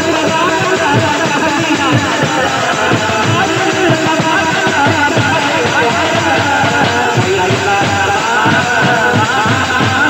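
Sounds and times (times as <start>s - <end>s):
band music played loud: 0.0s - 10.0s
fast drum beats: 0.0s - 10.0s.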